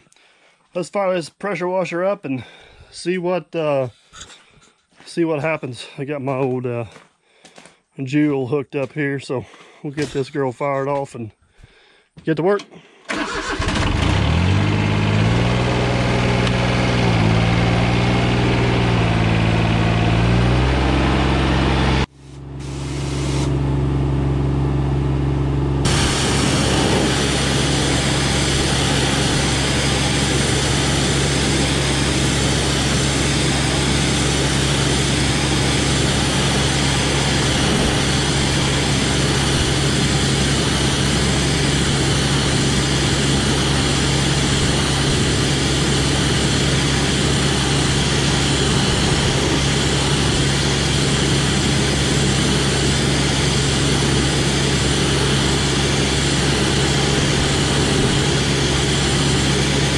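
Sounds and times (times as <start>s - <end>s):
lawn tractor engine: 12.6s - 59.9s
engine running steadily: 13.1s - 59.9s
pressure washer spray hiss: 22.6s - 23.5s, 25.9s - 31.0s.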